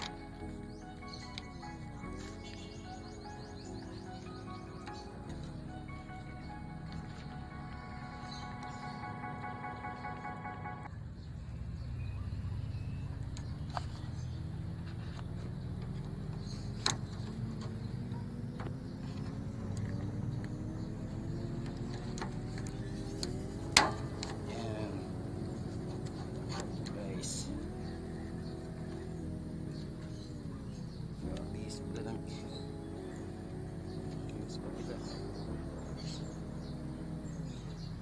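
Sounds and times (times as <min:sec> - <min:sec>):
vehicle engine rising in pitch: 0:00.0 - 0:38.0.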